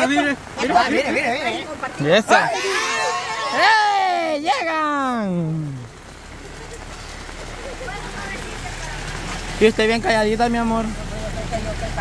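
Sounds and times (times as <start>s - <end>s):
steady rain falling: 0.0s - 12.0s
vehicle engine hum: 0.0s - 12.0s.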